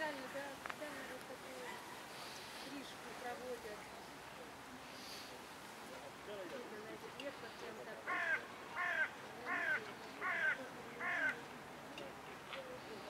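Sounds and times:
bird calling: 8.1s - 11.4s.

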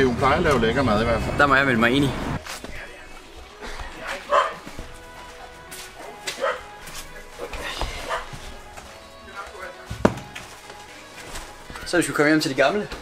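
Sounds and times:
faint background music: 0.0s - 13.0s
dog barking: 4.3s - 4.7s, 6.0s - 6.8s, 8.0s - 8.4s.

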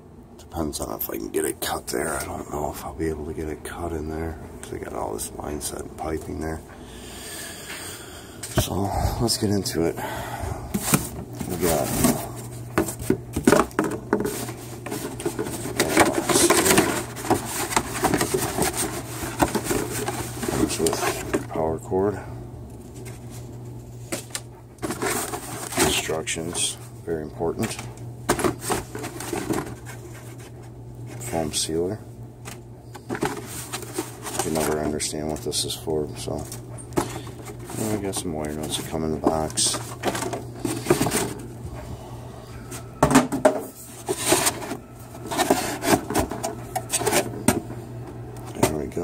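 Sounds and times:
cardboard rustling: 10.7s - 21.5s, 22.8s - 26.6s, 27.6s - 31.4s, 32.5s - 41.5s, 43.7s - 47.6s.

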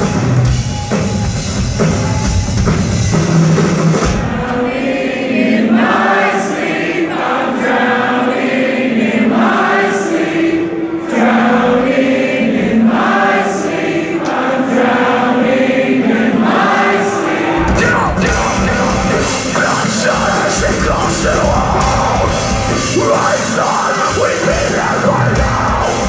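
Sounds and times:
crowd singing along: 3.8s - 26.0s.

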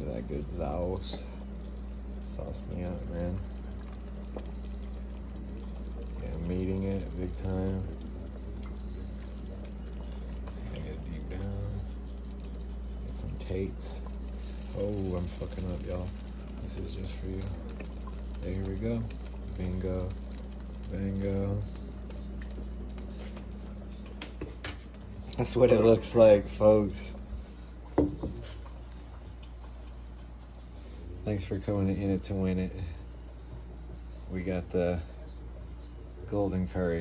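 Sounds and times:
steady low hum: 0.0s - 37.0s.

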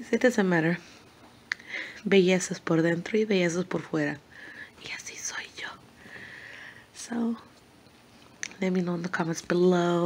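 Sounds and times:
woman whispering: 4.6s - 5.8s.

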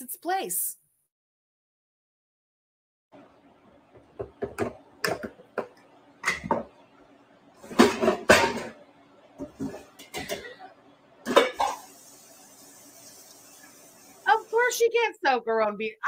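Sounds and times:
tap running at sink: 3.9s - 6.7s, 11.5s - 14.5s
dishes and utensils clanking: 4.2s - 6.7s, 7.6s - 8.8s, 9.4s - 12.0s.

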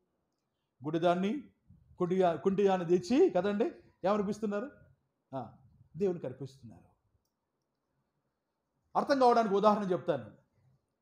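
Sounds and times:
man speaking into headset microphone: 0.8s - 4.8s, 5.4s - 6.8s, 9.0s - 10.3s.

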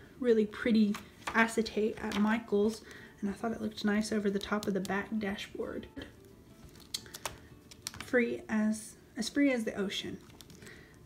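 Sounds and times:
plastic sheet clicks and crinkles: 6.6s - 8.1s, 10.2s - 10.7s.

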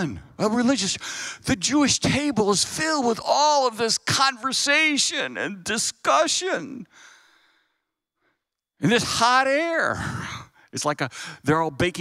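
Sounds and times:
man speaking: 0.0s - 6.9s, 8.8s - 12.0s.

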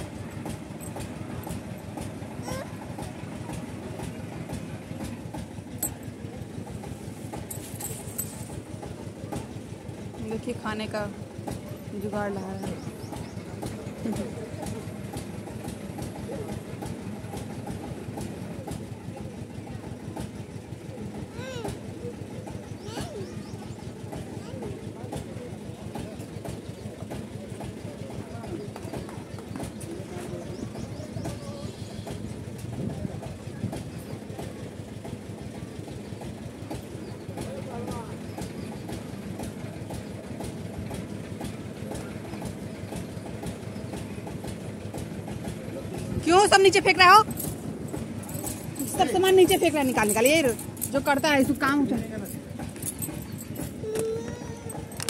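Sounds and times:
engine running: 0.0s - 55.0s
machine rumbling with regular clicks: 0.0s - 55.0s.

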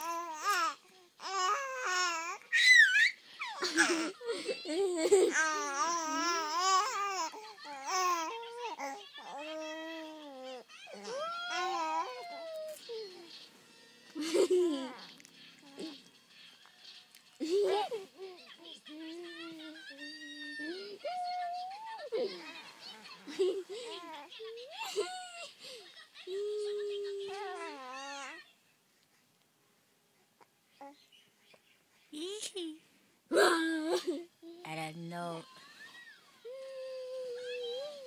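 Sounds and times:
baby making happy vocal sounds: 5.3s - 13.3s, 27.0s - 28.4s.

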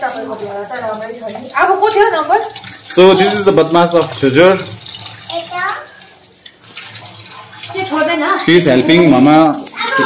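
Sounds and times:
tap water running into metal sink: 0.0s - 10.0s.

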